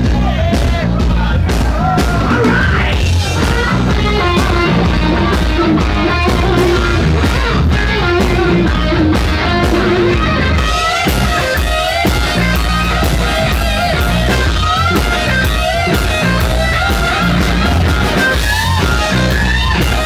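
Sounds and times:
bass guitar: 0:00.0 - 0:20.0
distorted electric guitars: 0:00.0 - 0:20.0
drums: 0:00.0 - 0:20.0
lead guitar bending notes: 0:01.4 - 0:20.0.

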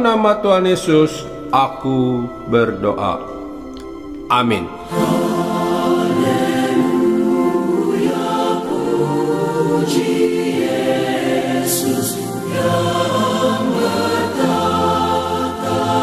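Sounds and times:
choir singing gospel song: 0:04.5 - 0:16.0.

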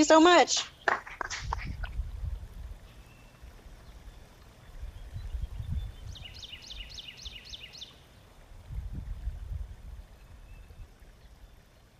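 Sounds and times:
bird chirping: 0:00.0 - 0:02.0, 0:02.8 - 0:08.4.

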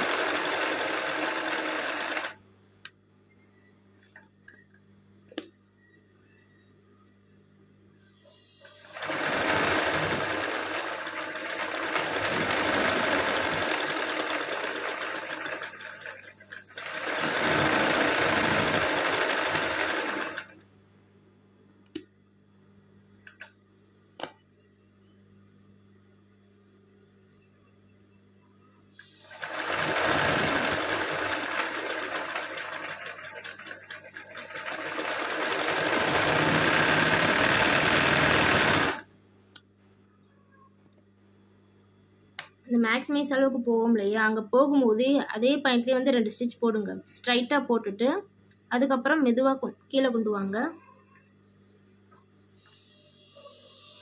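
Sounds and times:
electric sewing machine stitching: 0:00.0 - 0:02.4, 0:08.7 - 0:20.6, 0:29.1 - 0:39.1.

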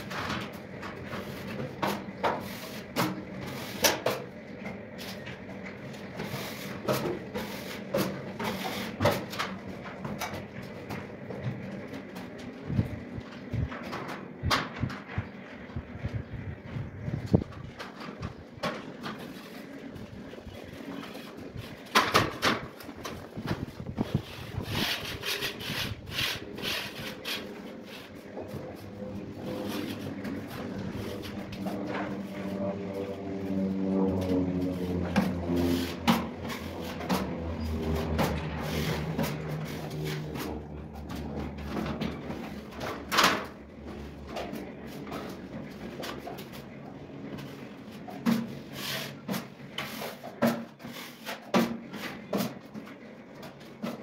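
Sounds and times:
low hum: 0:27.6 - 0:48.1.

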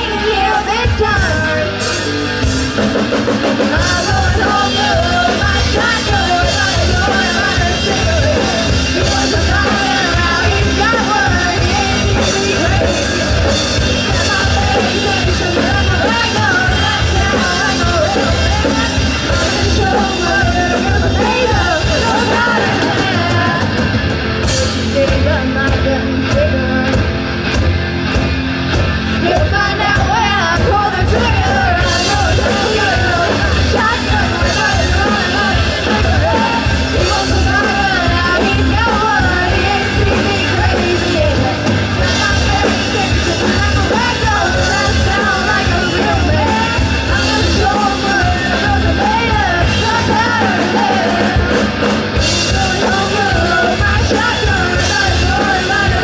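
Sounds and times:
women singing: 0:00.0 - 0:01.9, 0:03.3 - 0:27.1, 0:29.1 - 0:56.0
drum kit: 0:00.0 - 0:56.0
electric guitar: 0:00.0 - 0:56.0.

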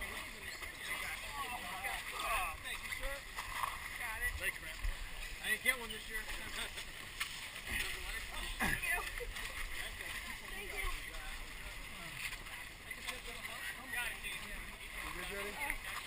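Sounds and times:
voices calling and chattering: 0:00.0 - 0:16.0.

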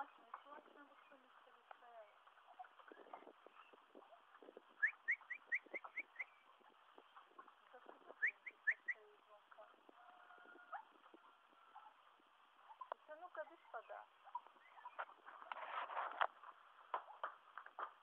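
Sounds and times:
bird chirping: 0:00.0 - 0:15.7.

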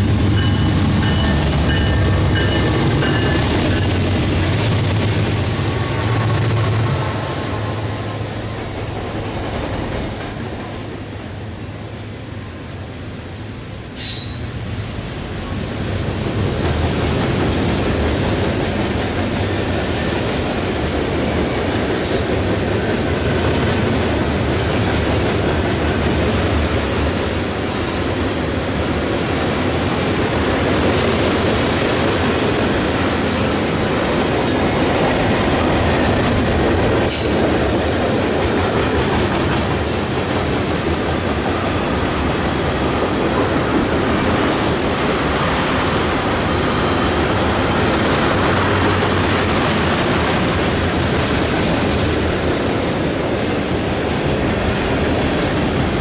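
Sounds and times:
steel wheels clattering on rail: 0:00.0 - 0:11.5, 0:14.0 - 0:14.6, 0:16.0 - 0:56.0
freight train rolling past: 0:00.0 - 0:56.0.

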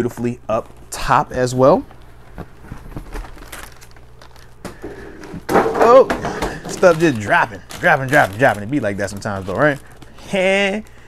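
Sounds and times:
cardboard box rustling: 0:02.0 - 0:04.6, 0:06.3 - 0:10.9.

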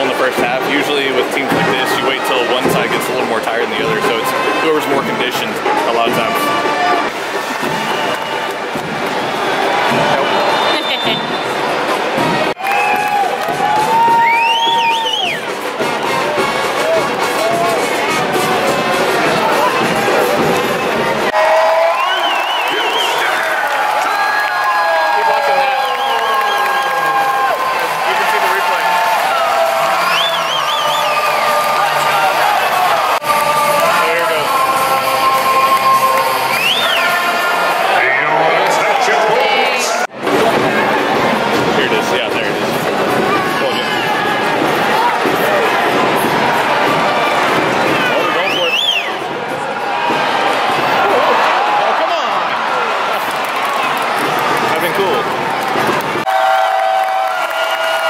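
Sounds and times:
stadium crowd cheering and clapping: 0:00.0 - 0:58.0
music with sung voices: 0:29.2 - 0:38.1.

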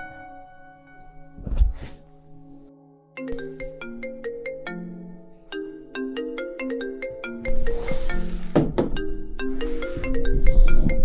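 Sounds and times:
bell-like mallet melody: 0:03.1 - 0:11.0.

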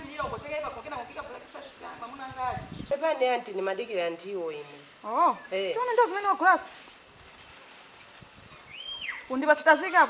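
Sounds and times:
plastic bag rustling: 0:06.7 - 0:09.0.

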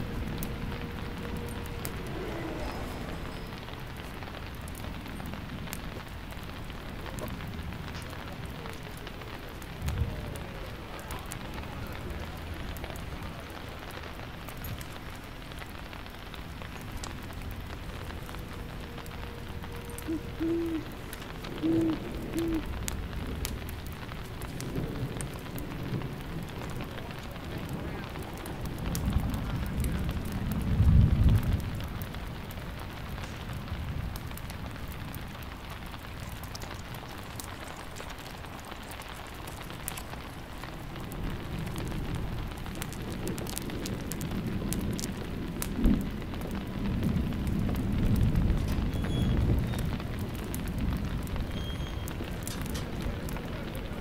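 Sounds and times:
steady rain: 0:00.0 - 0:54.0
thunder rumble: 0:00.0 - 0:54.0.

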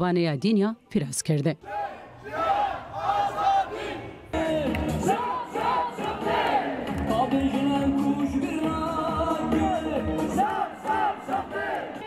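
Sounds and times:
crowd chanting slogans: 0:01.6 - 0:07.4, 0:08.5 - 0:12.0.

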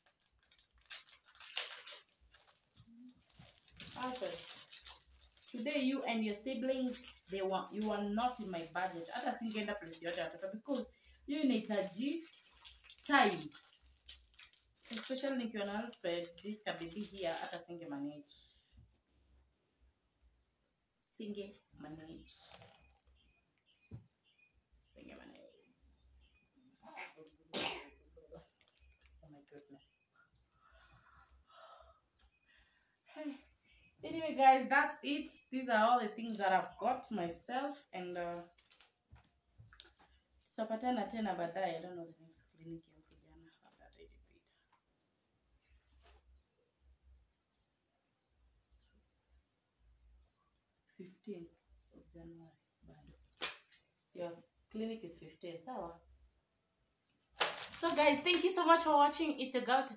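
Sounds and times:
plastic packaging crinkling and tearing: 0:00.0 - 0:17.7, 0:22.2 - 0:23.2, 0:28.5 - 0:29.2, 0:38.3 - 0:40.1, 0:57.4 - 0:58.7.

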